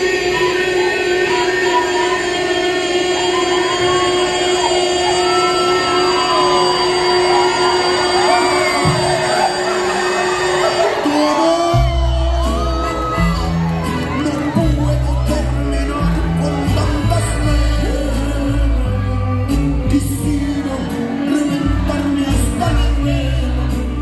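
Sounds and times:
crowd shouting and whooping: 0:00.0 - 0:24.0
bass and drums: 0:11.6 - 0:24.0.

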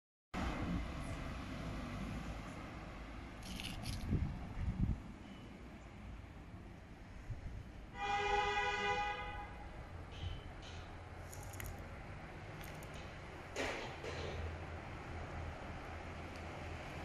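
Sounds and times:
low rumble of road noise: 0:00.4 - 0:17.0.

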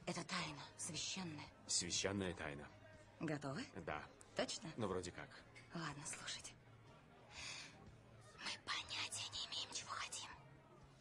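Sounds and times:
woman whispering: 0:08.4 - 0:10.4.

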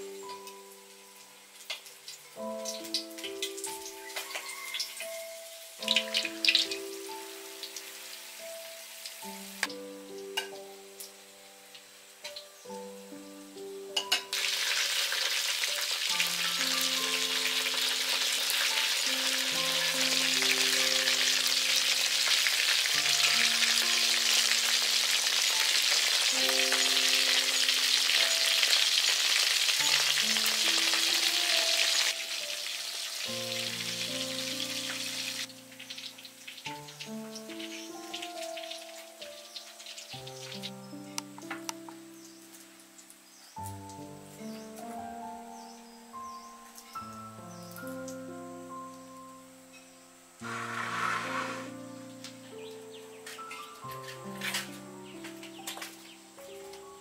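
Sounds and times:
food deep-frying in oil: 0:00.0 - 0:44.8
slow background music: 0:00.0 - 0:57.0.

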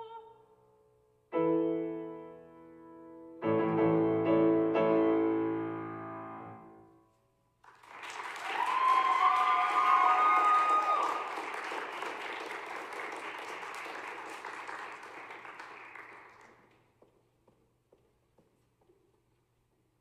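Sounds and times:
audience applauding: 0:07.6 - 0:16.8
high whoops: 0:08.2 - 0:11.4.

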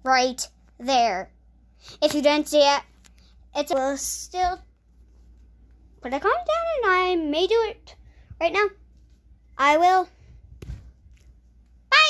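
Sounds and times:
child speaking: 0:00.0 - 0:01.3, 0:02.0 - 0:02.9, 0:03.6 - 0:04.7, 0:06.0 - 0:08.8, 0:09.6 - 0:10.2
faint low room hum: 0:00.0 - 0:12.0
soft thump: 0:10.5 - 0:11.0.

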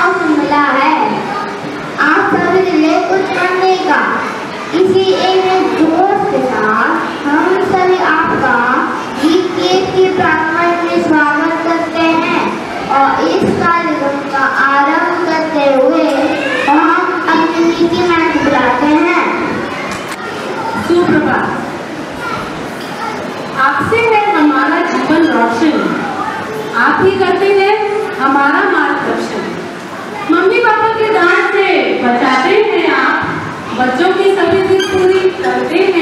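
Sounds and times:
boy speaking into a microphone: 0:00.0 - 0:36.0
children chattering: 0:00.0 - 0:36.0.

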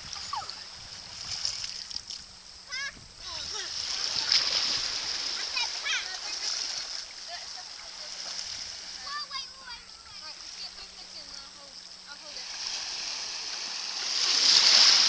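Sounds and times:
children calling out: 0:02.7 - 0:06.9
seawater splashing: 0:03.2 - 0:15.0.

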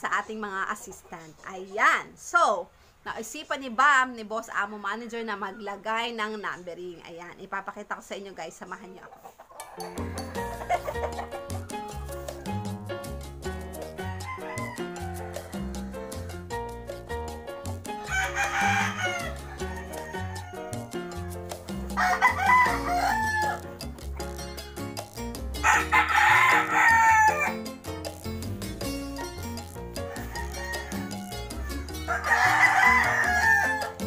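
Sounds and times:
background music with steady beat: 0:09.6 - 0:34.0
rooster crowing: 0:14.0 - 0:16.4, 0:18.0 - 0:21.2, 0:21.9 - 0:23.6, 0:25.6 - 0:27.6, 0:30.0 - 0:34.0.

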